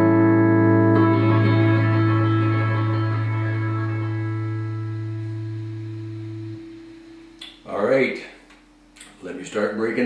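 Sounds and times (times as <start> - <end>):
electric guitar chord ringing: 0.0 - 7.6.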